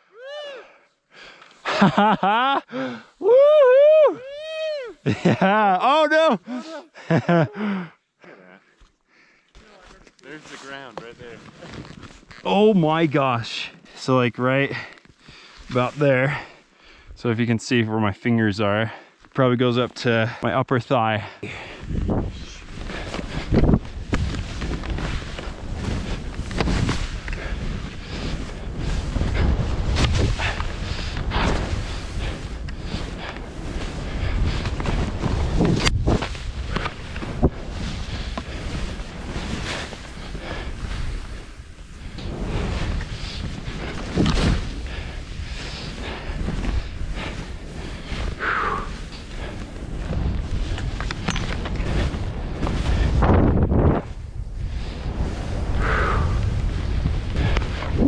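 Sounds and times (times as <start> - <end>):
skis hissing through snow: 9.6 - 12.6, 21.8 - 53.2, 54.0 - 58.0
wind on microphone: 21.8 - 58.0.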